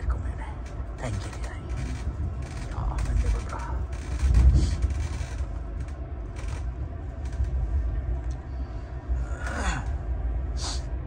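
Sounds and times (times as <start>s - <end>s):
train rumbling on track: 0.0s - 11.0s
rattles and knocks: 0.6s - 7.6s.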